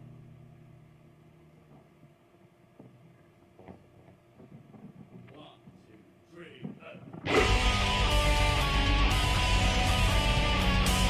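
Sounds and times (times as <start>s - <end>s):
metal music with distorted guitars: 7.3s - 11.0s.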